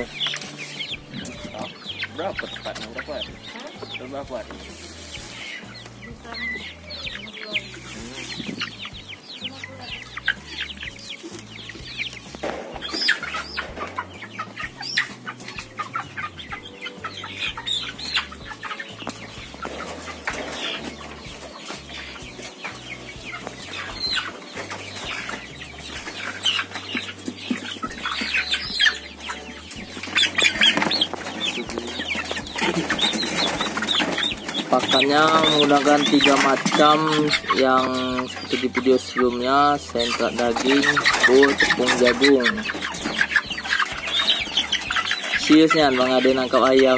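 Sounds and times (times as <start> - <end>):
cockerels clucking and squawking: 0.0 - 46.9.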